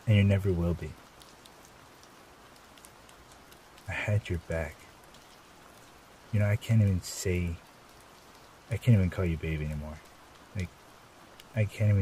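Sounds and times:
light rain drop ticks: 0:00.0 - 0:12.0
soft rain hiss: 0:00.0 - 0:12.0.

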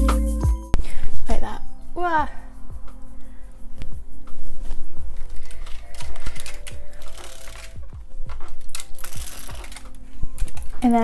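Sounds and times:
clothing rustling against microphone: 0:03.7 - 0:11.0.

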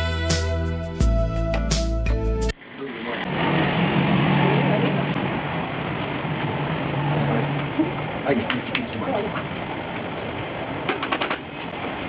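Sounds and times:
background music: 0:00.0 - 0:02.6.

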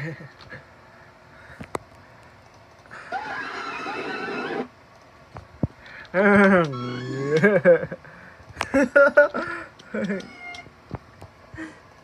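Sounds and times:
faint clicks: 0:01.6 - 0:02.9, 0:04.9 - 0:05.1
voices screaming through speakers: 0:03.0 - 0:04.7.

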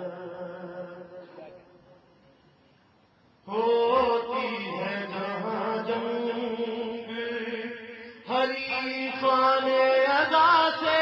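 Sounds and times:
man chanting: 0:03.5 - 0:11.0.

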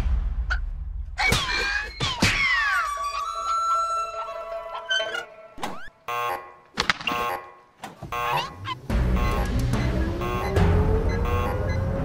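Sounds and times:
cartoon electronic button buzzing: 0:08.1 - 0:09.6.

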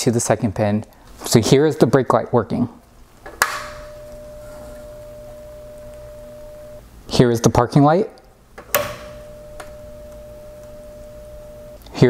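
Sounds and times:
faint low hum: 0:03.7 - 0:06.9, 0:08.0 - 0:12.0
steady electronic tone: 0:03.8 - 0:06.8, 0:09.1 - 0:11.8.

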